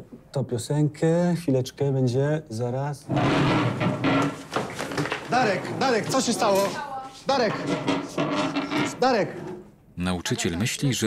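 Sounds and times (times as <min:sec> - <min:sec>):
chair clattering: 0:03.1 - 0:09.8
chairs and desks scraping: 0:03.1 - 0:09.8.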